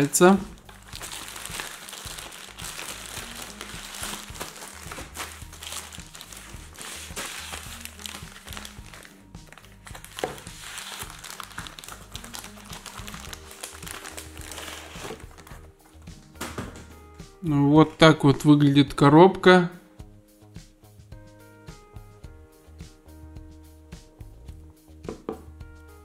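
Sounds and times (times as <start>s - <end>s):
plastic packaging crinkling: 0.0s - 15.7s
background music with bass line: 0.0s - 26.0s.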